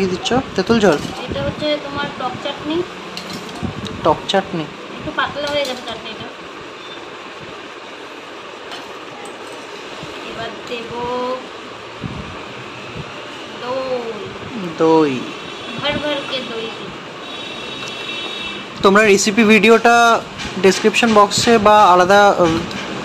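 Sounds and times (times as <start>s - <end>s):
steady background hum: 0.0s - 23.0s.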